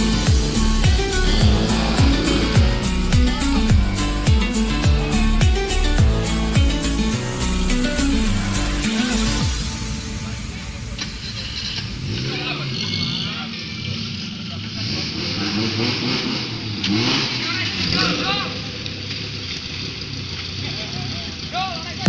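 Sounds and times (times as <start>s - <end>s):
off-road vehicle engine revving: 0.0s - 22.0s
vehicle driving through muddy water: 12.9s - 22.0s.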